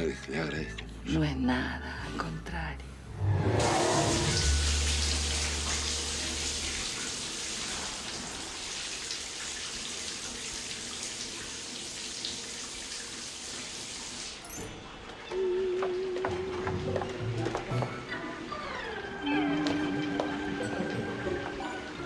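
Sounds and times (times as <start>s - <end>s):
low hum: 2.8s - 8.0s
shower water spraying: 3.6s - 14.4s.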